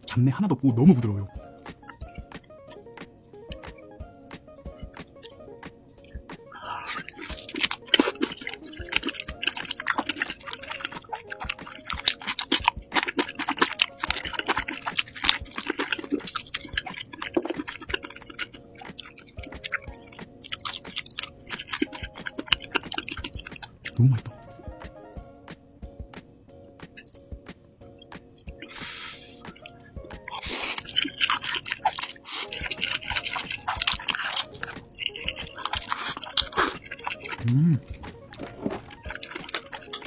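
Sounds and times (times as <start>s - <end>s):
quiet background music: 0.0s - 40.0s
close chewing and mouth clicks: 1.8s - 3.8s, 6.0s - 24.4s, 27.0s - 40.0s.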